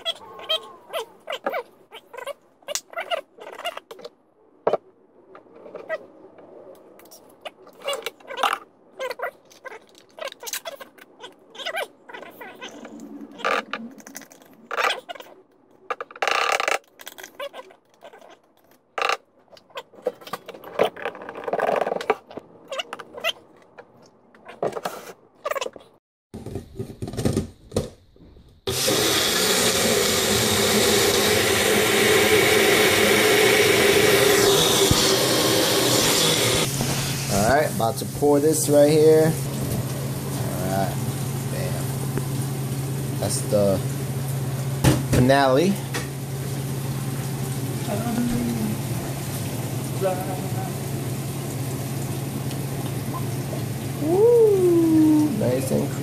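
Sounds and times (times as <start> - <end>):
blender running: 28.7 - 37.4.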